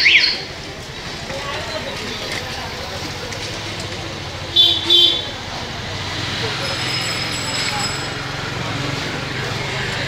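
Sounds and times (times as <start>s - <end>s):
street din: 0.0s - 10.0s
vehicle horn toots: 4.6s - 5.3s.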